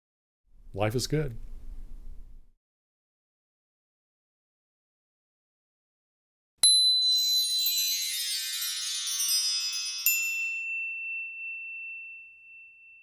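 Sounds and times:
ringing ding: 0:06.6 - 0:08.2, 0:09.2 - 0:13.0
bell-like tinkles: 0:06.6 - 0:13.0.

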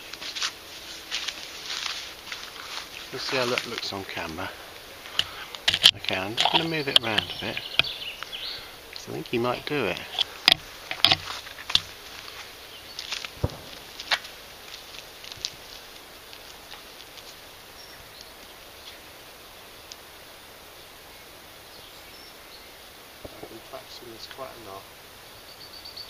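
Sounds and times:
outdoor background hiss: 0:00.0 - 0:26.0
sharp clicks: 0:05.1 - 0:08.3, 0:08.9 - 0:11.9.

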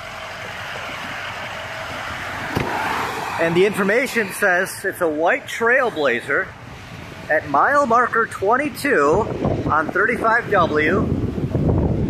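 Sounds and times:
highway traffic road noise: 0:00.0 - 0:12.0.

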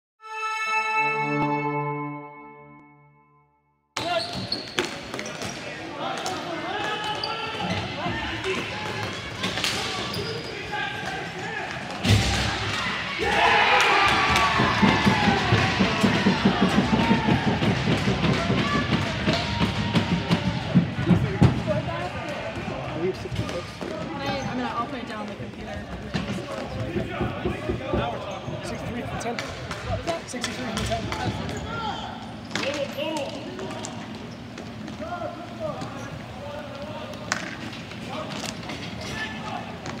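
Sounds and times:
players shouting and cheering: 0:05.8 - 0:23.4.

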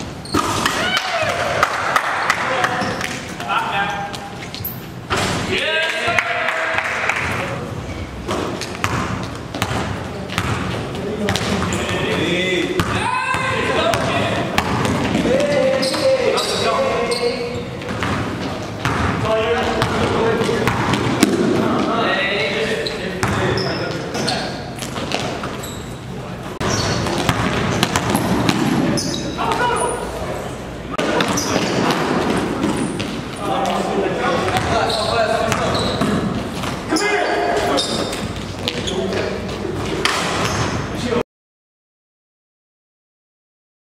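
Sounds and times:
sneaker squeaks on court: 0:00.2 - 0:00.8, 0:03.8 - 0:05.0, 0:15.6 - 0:19.1, 0:22.8 - 0:30.1, 0:31.1 - 0:31.9, 0:34.5 - 0:39.2, 0:40.2 - 0:40.9
players shouting: 0:00.6 - 0:02.8, 0:12.8 - 0:14.5, 0:15.2 - 0:17.1
basketball bouncing on gym floor: 0:08.3 - 0:16.2, 0:17.5 - 0:21.9, 0:23.2 - 0:25.6, 0:26.6 - 0:29.8, 0:34.4 - 0:36.8.

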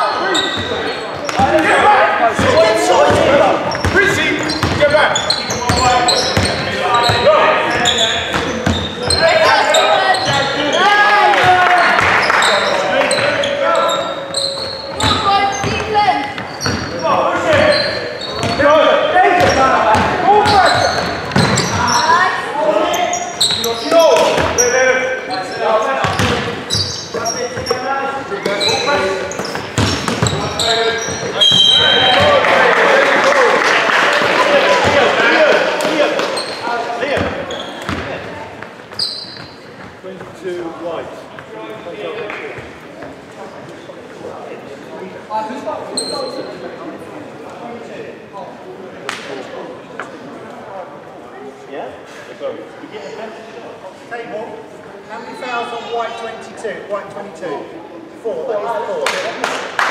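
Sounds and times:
shoe squeaks: 0:00.0 - 0:10.9, 0:12.2 - 0:18.7, 0:20.4 - 0:32.3, 0:36.2 - 0:38.0, 0:38.9 - 0:39.9, 0:45.8 - 0:46.6, 0:55.1 - 0:56.6
players calling out: 0:00.0 - 0:39.7
basketball bouncing on wooden floor: 0:19.4 - 0:21.8, 0:29.5 - 0:30.4.

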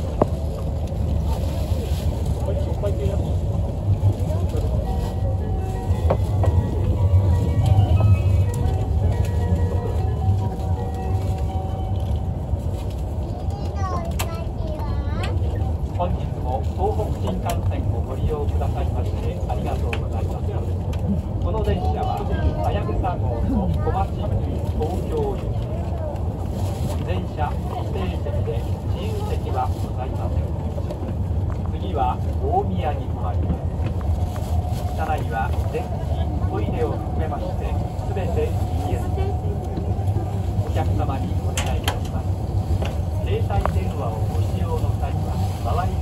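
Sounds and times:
faint voices: 0:00.0 - 0:46.0
train cabin rumble: 0:00.0 - 0:46.0.

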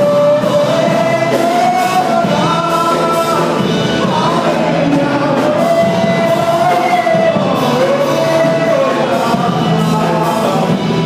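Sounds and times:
gospel band accompaniment: 0:00.0 - 0:11.0.

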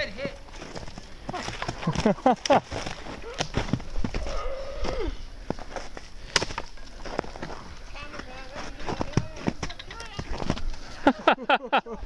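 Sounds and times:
men laughing: 0:01.3 - 0:03.0, 0:10.8 - 0:12.0.

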